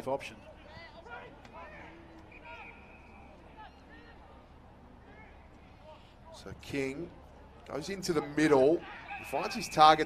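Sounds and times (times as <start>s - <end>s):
open-air ambience hum: 0.0s - 10.0s
distant shouted calls: 1.0s - 4.4s, 8.8s - 10.0s.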